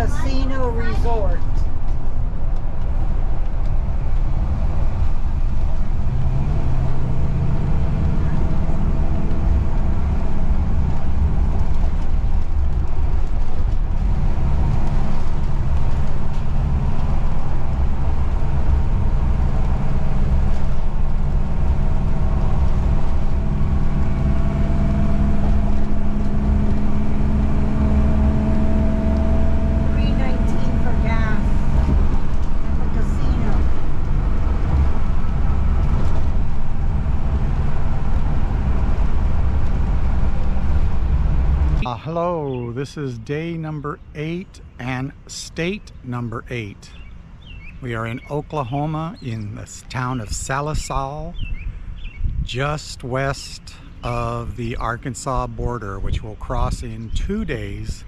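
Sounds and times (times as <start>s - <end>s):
engine and road noise drone: 0.0s - 58.0s.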